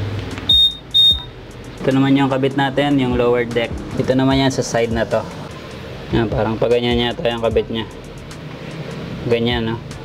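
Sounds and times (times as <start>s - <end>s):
scooter short high beeps: 0.5s - 1.3s.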